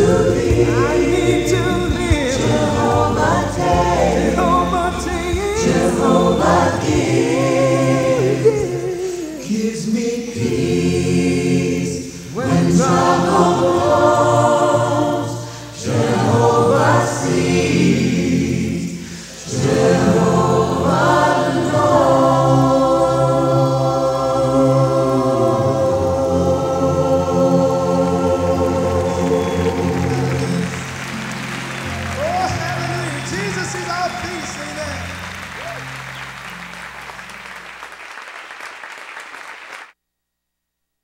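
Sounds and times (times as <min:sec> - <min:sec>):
choir singing a gospel song: 0:00.0 - 0:35.2.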